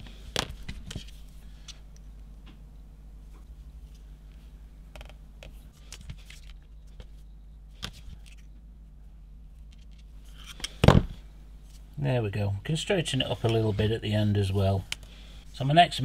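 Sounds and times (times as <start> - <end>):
low steady hum: 0.0 - 16.0
handling clicks and scrapes: 9.6 - 10.8.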